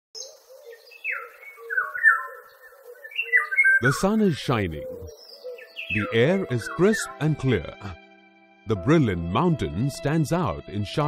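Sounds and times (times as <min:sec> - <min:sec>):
descending whistled bird calls: 0:00.2 - 0:07.2
low repeated bird call: 0:00.2 - 0:07.2.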